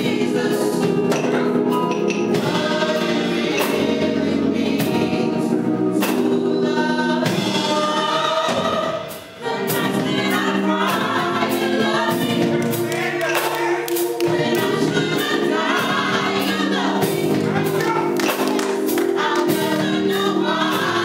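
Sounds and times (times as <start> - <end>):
gospel choir singing in harmony: 0.0 - 21.0.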